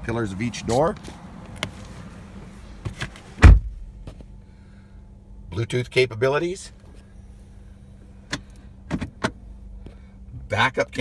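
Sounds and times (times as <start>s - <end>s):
low cabin hum: 0.0s - 11.0s.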